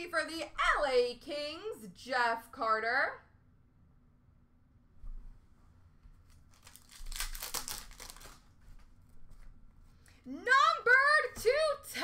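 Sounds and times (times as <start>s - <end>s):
foil wrapper tearing and crinkling: 6.3s - 8.6s.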